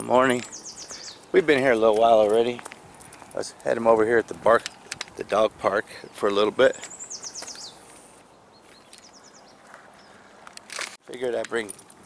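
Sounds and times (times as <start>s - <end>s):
songbird chirping: 0.0s - 11.7s
faint outdoor background noise: 0.0s - 12.0s.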